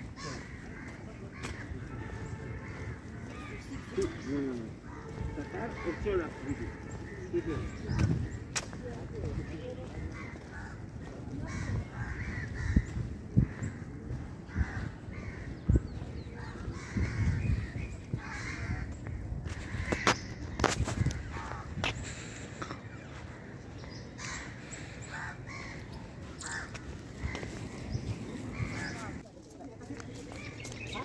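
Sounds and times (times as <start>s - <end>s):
bird calls: 11.4s - 29.3s.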